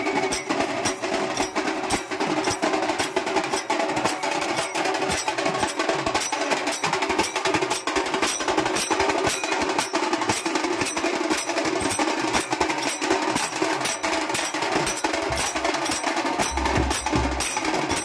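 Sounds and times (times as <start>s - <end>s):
drums beaten with sticks: 0.0s - 18.0s
small hand cymbals clashing: 0.0s - 18.0s.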